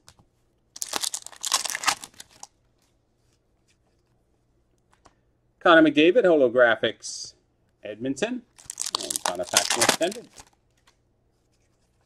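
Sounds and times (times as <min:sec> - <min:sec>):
wrapper crinkling and tearing: 0:00.8 - 0:02.5, 0:08.6 - 0:10.6.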